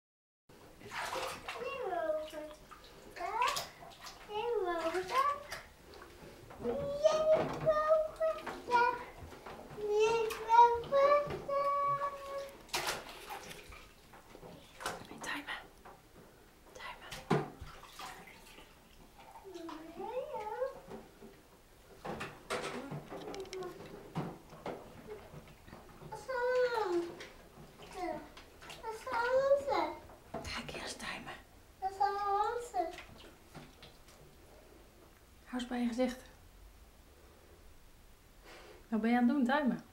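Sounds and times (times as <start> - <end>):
bath water splashing: 0.6 - 15.1, 17.0 - 30.3
young child's vocal sounds: 6.6 - 9.2, 9.8 - 12.6.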